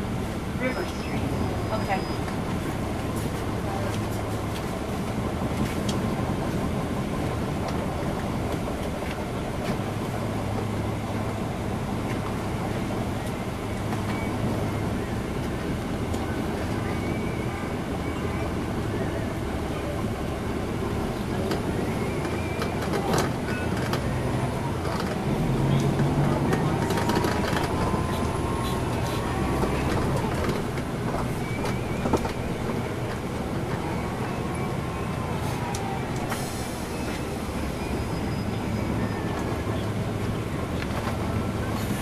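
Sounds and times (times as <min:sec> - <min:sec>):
diesel bus engine rumble: 0:00.0 - 0:42.0.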